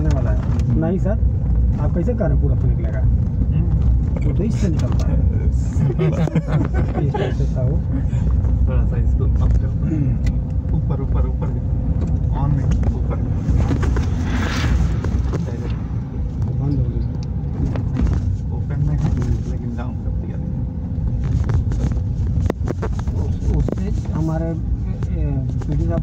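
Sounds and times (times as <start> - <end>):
vehicle engine and tyre rumble: 0.0 - 26.0.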